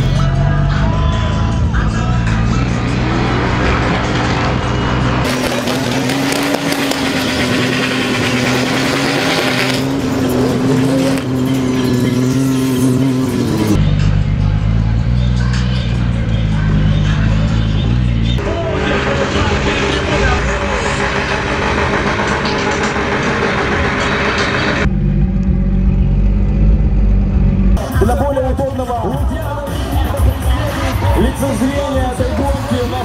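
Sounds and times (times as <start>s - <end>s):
car engine at high revs: 0.0s - 27.8s
road and tyre noise: 0.0s - 33.0s
background music with beat: 27.8s - 33.0s.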